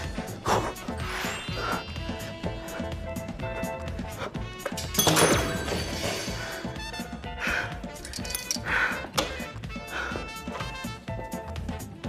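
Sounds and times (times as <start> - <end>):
background music: 0.0 - 12.0
heavy breaths: 6.2 - 11.0.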